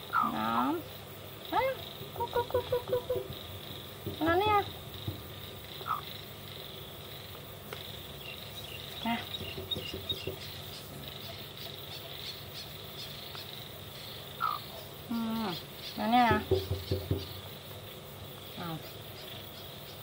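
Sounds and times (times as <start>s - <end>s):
hen calling softly: 0.0s - 0.9s, 5.8s - 6.2s
insects chirring: 0.0s - 20.0s.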